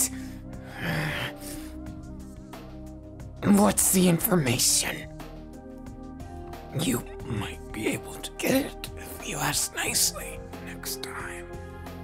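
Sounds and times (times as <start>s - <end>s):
background music chords: 0.0s - 12.0s.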